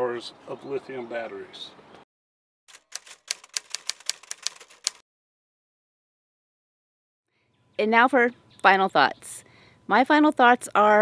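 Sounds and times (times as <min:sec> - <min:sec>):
typewriter key clicks: 0:02.7 - 0:05.0.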